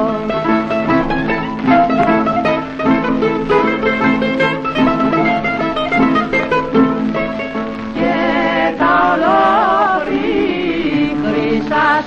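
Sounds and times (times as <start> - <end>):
bouzouki plucked notes: 0.0 - 12.0
string accompaniment: 0.0 - 12.0.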